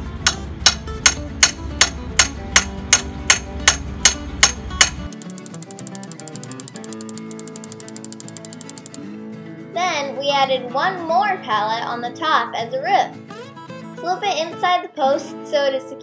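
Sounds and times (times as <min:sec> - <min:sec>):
background music: 0:00.0 - 0:16.0
hammer striking metal post: 0:00.2 - 0:07.2
fast light ticks: 0:05.0 - 0:09.0.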